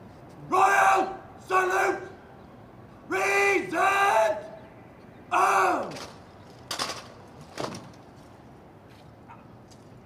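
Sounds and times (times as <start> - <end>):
soldiers' rifles crashing: 5.9 - 7.9.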